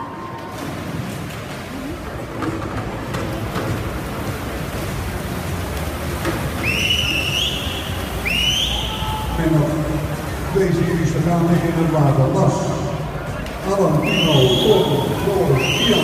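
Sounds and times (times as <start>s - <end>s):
crowd noise: 0.0s - 16.0s
swimmers splashing: 0.0s - 16.0s
loud rising whistles: 6.6s - 9.4s.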